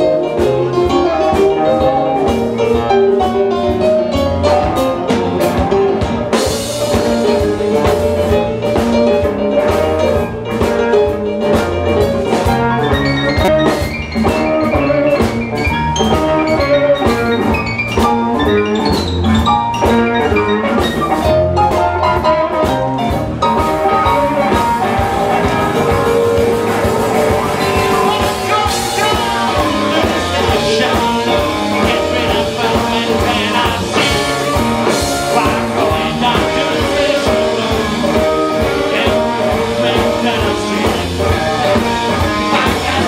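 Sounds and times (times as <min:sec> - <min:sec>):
electric blues band playing: 0:00.0 - 0:43.0
electric guitar: 0:00.0 - 0:43.0.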